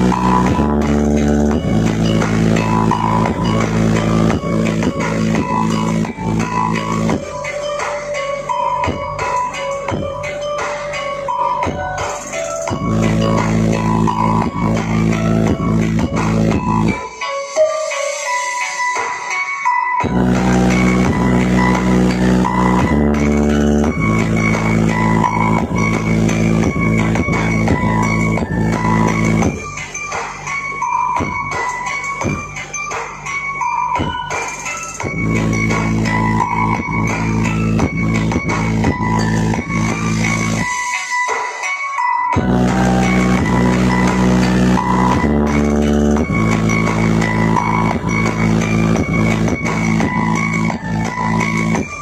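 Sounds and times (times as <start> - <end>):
heavy pulsing bass: 0.0 - 17.0, 20.0 - 34.4, 35.0 - 40.7, 42.4 - 52.0
loud electronic dance music: 0.0 - 52.0.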